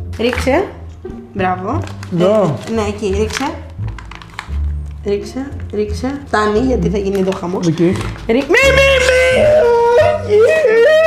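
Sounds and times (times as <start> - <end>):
woman's high-pitched wailing cry: 8.5 - 11.0.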